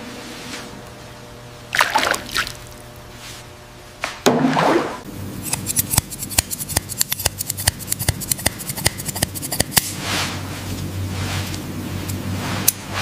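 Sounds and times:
shears snipping hair: 5.4 - 10.0.

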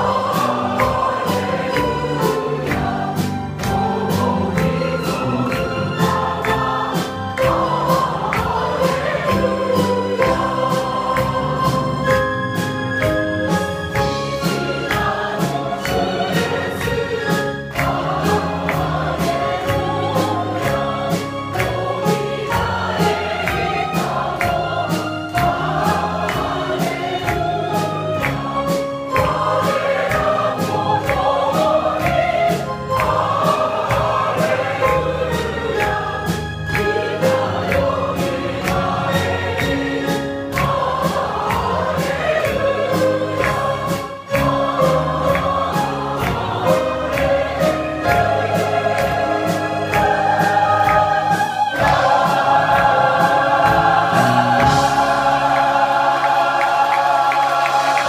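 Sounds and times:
choir singing a hymn: 0.0 - 58.0.

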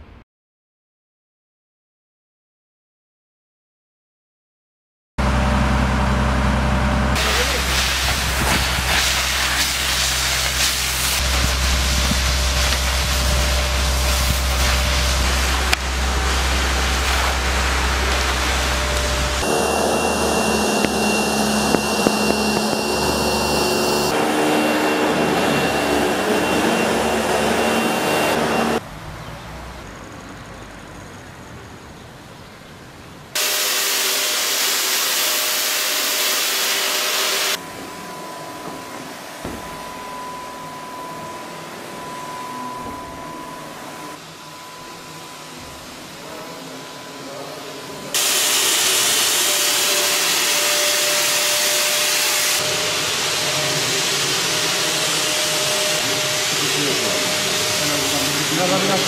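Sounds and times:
fire engine rumble: 5.2 - 24.2
vacuum cleaner whine: 5.2 - 28.8, 33.4 - 59.0
fogger hissing: 7.1 - 28.8, 33.4 - 59.0
water spraying: 7.2 - 24.2, 33.4 - 37.6, 48.2 - 59.0.

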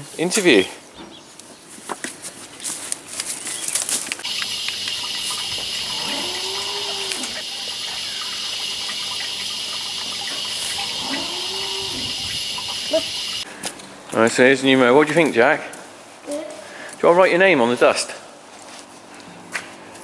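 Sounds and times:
cattle calling: 4.2 - 13.4
steady hiss: 4.2 - 13.5.

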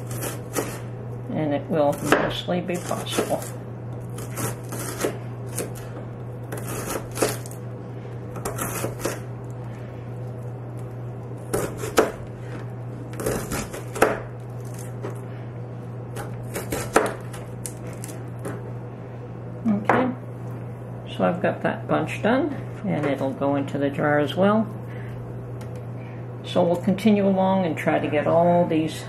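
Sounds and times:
knife slicing cabbage on board: 0.0 - 0.9, 1.9 - 3.6, 4.2 - 5.9, 6.5 - 7.6, 8.4 - 9.3, 11.5 - 15.2, 16.2 - 18.1
steady low hum: 0.0 - 29.0.

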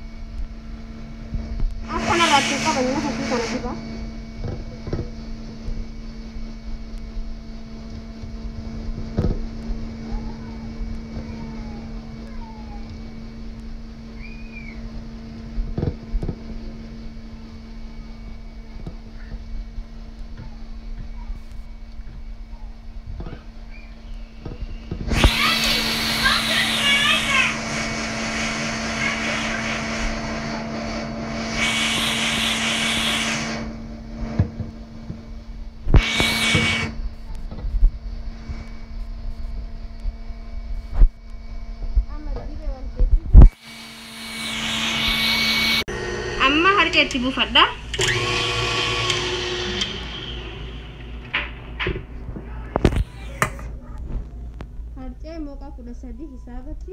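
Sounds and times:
steady low hum: 0.0 - 56.9
bursts of hiss: 1.8 - 3.9, 25.0 - 33.8, 35.9 - 37.0.

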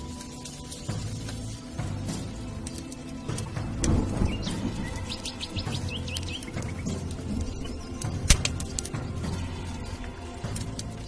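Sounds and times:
background music: 0.0 - 11.0
bird chirping: 3.8 - 8.3.

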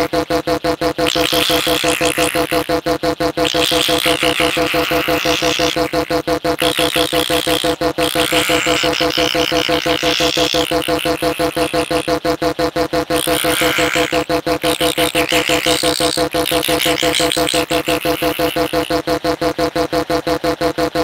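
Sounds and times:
stuttering electronic synth music: 0.0 - 21.0.

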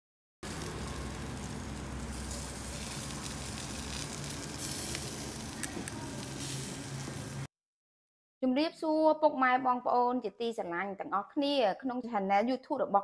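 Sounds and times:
meat sizzling on a grill: 0.4 - 7.5.

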